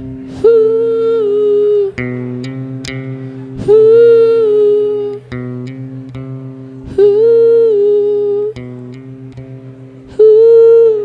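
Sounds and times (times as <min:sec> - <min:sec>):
man humming loudly: 0:00.0 - 0:02.5, 0:03.1 - 0:05.6, 0:06.8 - 0:09.0, 0:10.1 - 0:11.0
electric bass guitar notes: 0:00.0 - 0:11.0.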